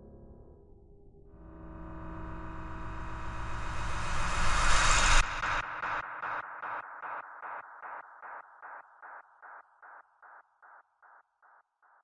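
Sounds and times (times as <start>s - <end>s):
low rumble: 1.1s - 5.8s
cinematic riser noise: 1.5s - 6.0s.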